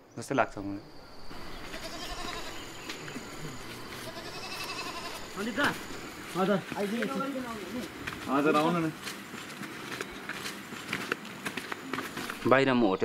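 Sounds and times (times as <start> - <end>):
faint distant calls: 0.0 - 13.0
thin steady high tone: 0.6 - 8.5.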